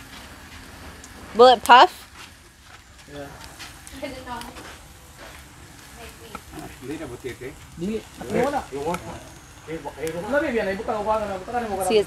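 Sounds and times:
fish sizzling on a grill: 0.0s - 12.0s
people talking: 1.4s - 2.0s, 3.1s - 4.8s, 5.9s - 12.0s.

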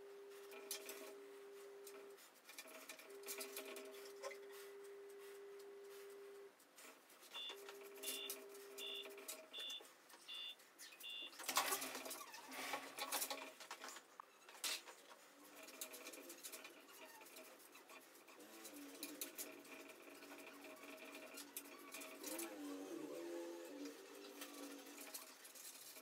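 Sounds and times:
faint steady hum: 0.0s - 11.4s
short electronic beeps: 7.3s - 11.4s.

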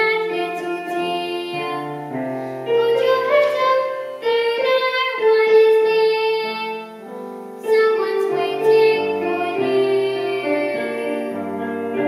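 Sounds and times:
girl singing: 0.0s - 12.0s
piano accompaniment: 0.0s - 12.0s.

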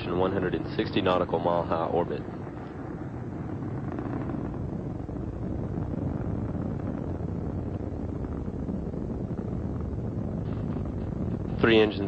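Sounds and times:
rocket engines rumbling: 0.0s - 12.0s.

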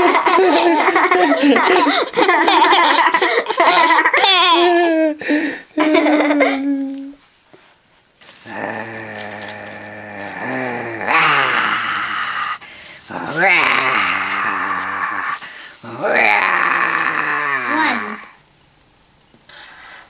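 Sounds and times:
low dinosaur roars: 8.4s - 18.4s.

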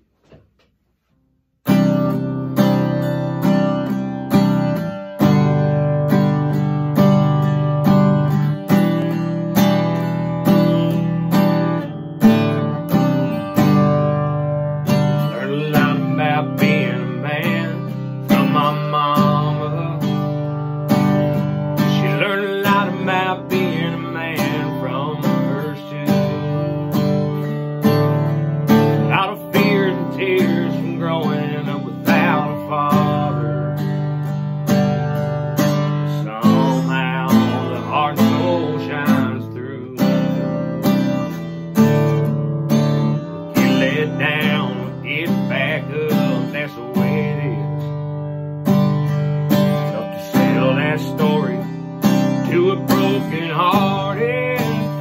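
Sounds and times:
acoustic guitar strumming: 0.0s - 55.0s
man singing: 14.9s - 34.4s, 35.2s - 48.2s, 48.8s - 55.0s.

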